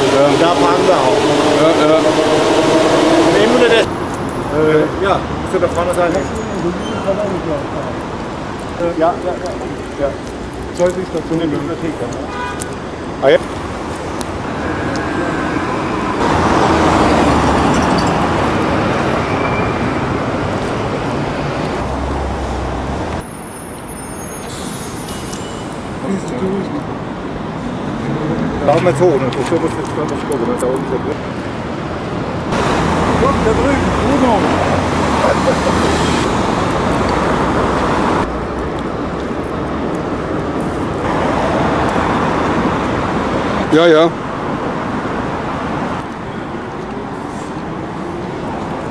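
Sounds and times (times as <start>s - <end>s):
voices: 0.0s - 12.3s, 32.6s - 37.1s
passing cars: 0.0s - 48.9s.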